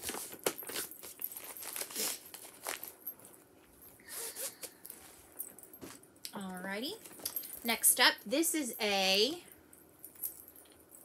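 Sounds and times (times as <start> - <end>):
fabric and paper rustling: 0.0 - 3.3
zipper being pulled: 4.1 - 4.7.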